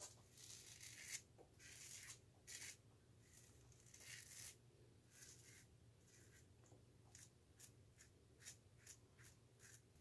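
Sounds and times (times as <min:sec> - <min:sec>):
razor scraping stubble: 0:00.3 - 0:06.5, 0:07.1 - 0:10.0.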